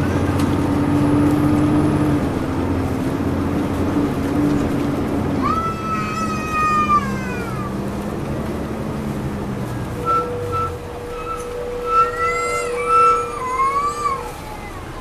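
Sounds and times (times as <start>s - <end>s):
brakes squealing: 0.0s - 15.0s
bus engine drone: 0.0s - 15.0s.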